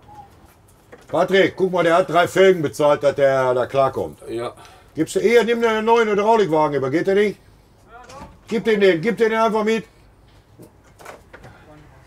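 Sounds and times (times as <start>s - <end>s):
glass door clicks and knocks: 8.0s - 8.7s.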